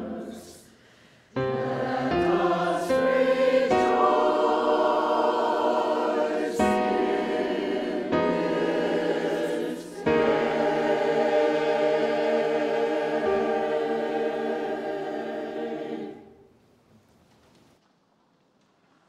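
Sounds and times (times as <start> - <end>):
mixed choir singing: 0.0 - 0.8, 1.4 - 16.5.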